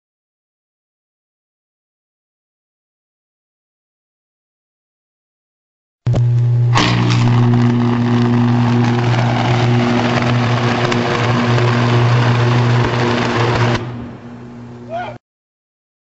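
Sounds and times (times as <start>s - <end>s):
electric arc buzzing and crackling: 6.1s - 14.9s
sharp electric crack: 6.1s - 14.9s.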